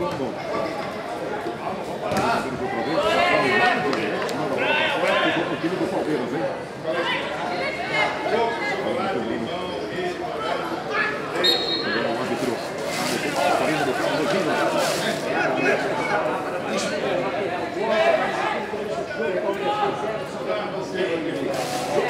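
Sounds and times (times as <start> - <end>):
men's voices chattering: 0.0 - 22.0.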